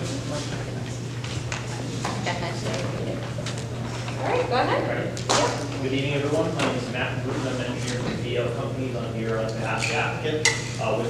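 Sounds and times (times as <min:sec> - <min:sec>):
steady low hum: 0:00.0 - 0:11.0
man talking in echoing hall: 0:04.8 - 0:11.0.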